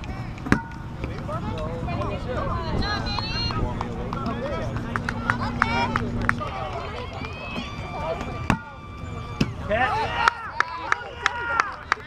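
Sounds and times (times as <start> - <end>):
players calling out: 0.2 - 12.0
kickball being kicked: 0.4 - 1.2.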